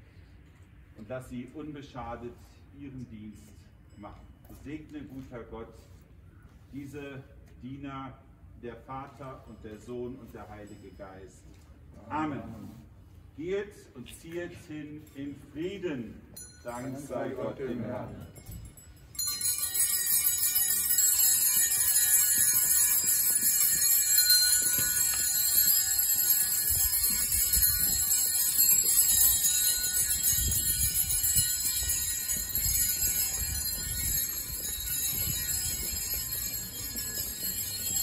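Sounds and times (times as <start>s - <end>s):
jingle bells shaken: 18.0s - 38.0s.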